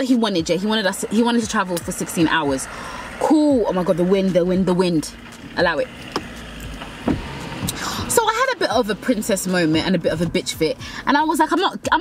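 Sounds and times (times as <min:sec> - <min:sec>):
electric window motor humming: 0:00.1 - 0:11.0.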